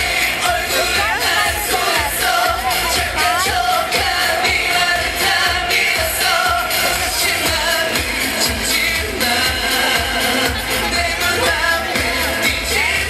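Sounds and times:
amplified pop backing music: 0.0s - 13.0s
male voices singing: 0.0s - 13.0s.

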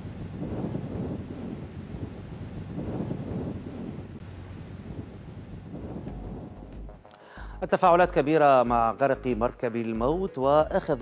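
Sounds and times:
wind buffeting microphone: 0.0s - 7.0s.

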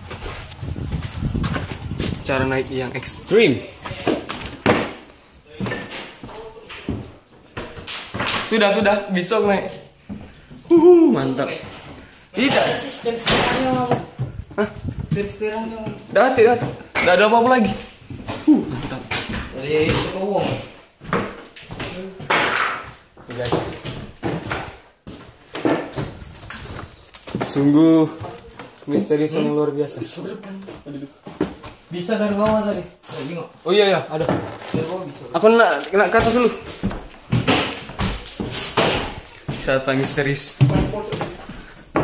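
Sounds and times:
footsteps on debris: 0.0s - 8.3s, 34.1s - 42.0s
excited voices: 10.6s - 11.4s
sharp knocks and thuds: 36.1s - 42.0s.

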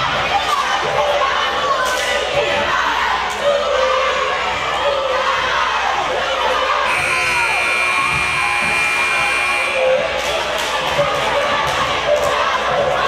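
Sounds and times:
crowd chatter: 0.0s - 13.0s
scoreboard buzzer: 6.9s - 10.0s.

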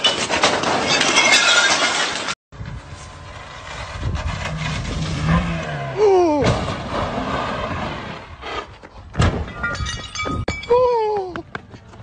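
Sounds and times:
tyres skidding: 0.1s - 9.1s
car engine revving: 3.0s - 6.1s.

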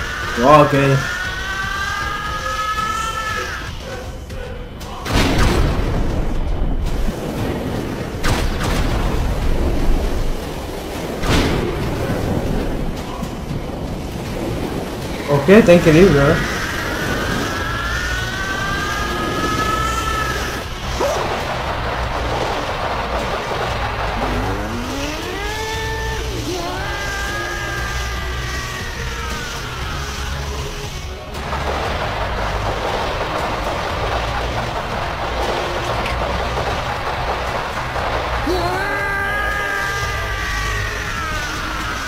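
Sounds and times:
animated character screaming: 0.0s - 3.8s, 15.8s - 21.2s, 24.1s - 31.0s, 38.4s - 42.0s
rush of noise: 0.0s - 42.0s
low rumble: 3.9s - 42.0s.

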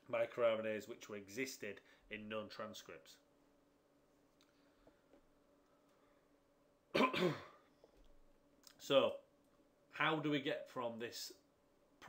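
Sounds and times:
man clearing throat: 6.9s - 7.6s.

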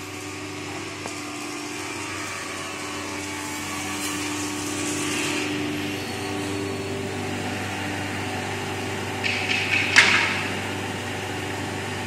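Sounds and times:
machine whirring: 0.0s - 12.0s
woodworking machine motor hum: 0.0s - 12.0s.

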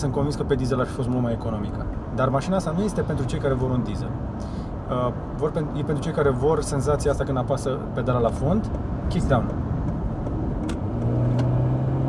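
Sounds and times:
car engine revving hard: 10.7s - 12.0s.

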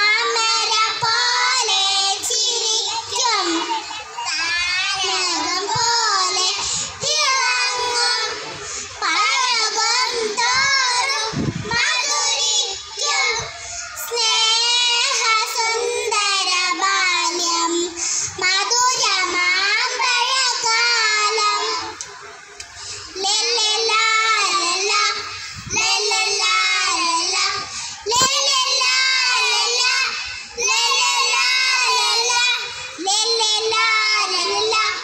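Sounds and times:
children singing in unison: 0.0s - 35.0s.

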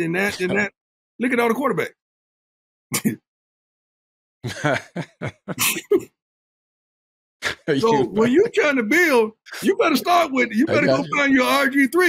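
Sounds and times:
men laughing: 0.2s - 0.7s, 4.5s - 6.1s, 7.6s - 11.6s.

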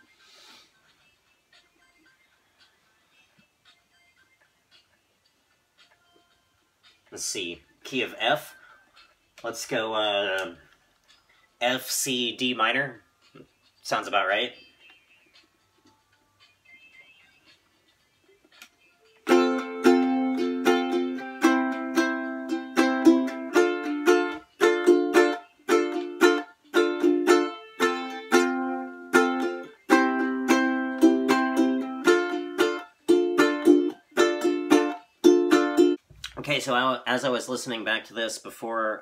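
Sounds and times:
ukulele strummed in choppy rhythm: 19.2s - 36.3s.

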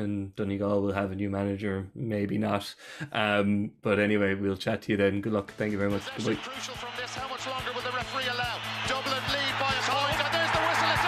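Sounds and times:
sports commentator speaking: 0.0s - 11.0s
theme music with steady beat: 5.5s - 11.0s.

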